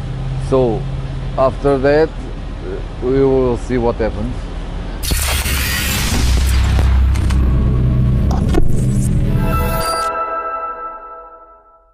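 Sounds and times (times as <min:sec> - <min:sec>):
glitchy clicks: 0:05.0 - 0:10.1
deep bass rumble: 0:06.0 - 0:09.5
held chord: 0:09.1 - 0:11.9.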